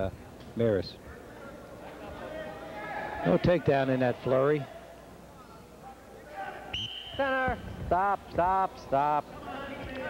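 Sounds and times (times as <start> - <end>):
referee's whistle: 6.7 - 7.6.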